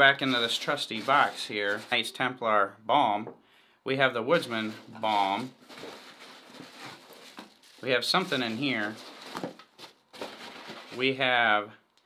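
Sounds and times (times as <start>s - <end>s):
hands rummaging in cardboard box: 0.2s - 2.1s, 4.4s - 11.2s
packaging and tins knocking: 4.5s - 11.1s.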